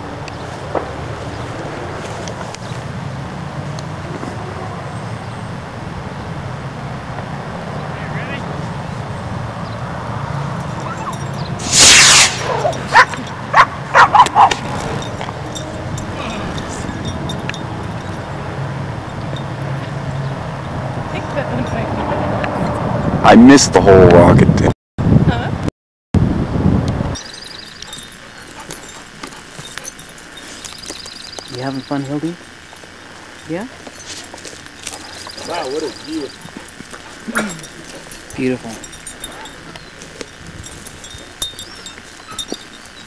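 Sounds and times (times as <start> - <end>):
loud noisy burst: 11.6 - 12.7
dog barking: 12.4 - 15.0, 34.9 - 40.0
wind noise on microphone: 20.6 - 28.1, 38.2 - 42.7.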